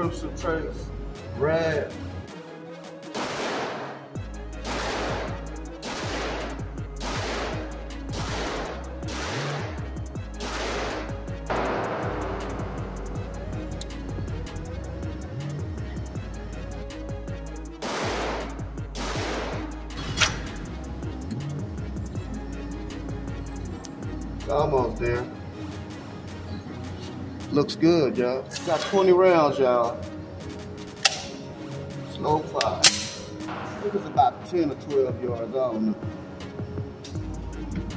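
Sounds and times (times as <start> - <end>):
background music: 0.0 - 37.9
pistol shots echoing indoors: 3.1 - 9.8, 10.4 - 13.8, 17.8 - 20.4.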